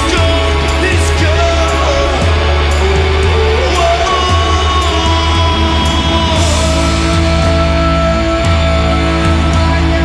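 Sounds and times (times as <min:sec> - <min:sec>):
live rock band playing: 0:00.0 - 0:10.0.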